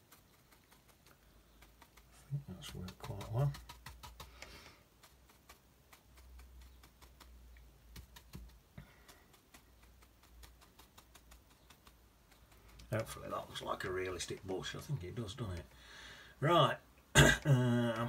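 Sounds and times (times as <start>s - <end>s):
brush tapping on paper: 0.0s - 14.8s.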